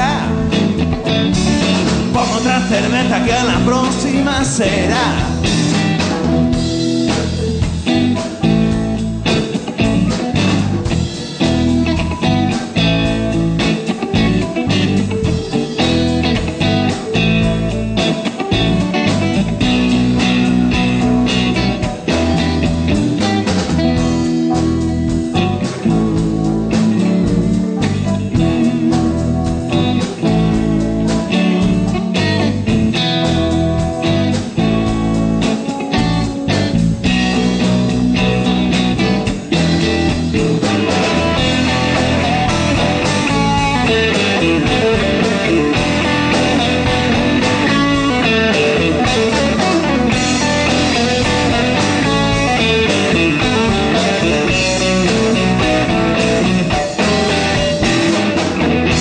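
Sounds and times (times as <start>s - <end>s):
drum kit: 0.0s - 59.0s
electric guitar: 0.0s - 59.0s.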